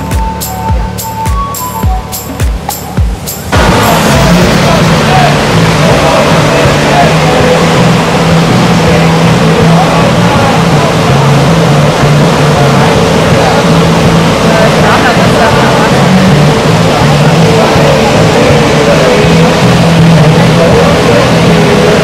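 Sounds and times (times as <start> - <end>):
low tones stepping between pitches: 0.0 - 22.0
whitewater rushing: 0.0 - 22.0.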